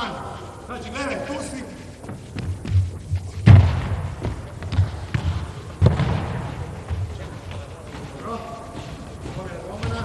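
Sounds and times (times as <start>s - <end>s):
ball thumping on wooden floor: 3.4s - 7.0s.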